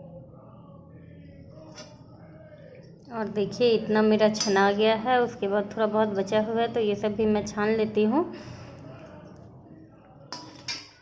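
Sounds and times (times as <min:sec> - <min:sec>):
metal spoon clinking on pan: 0:04.3 - 0:04.8, 0:10.3 - 0:11.0.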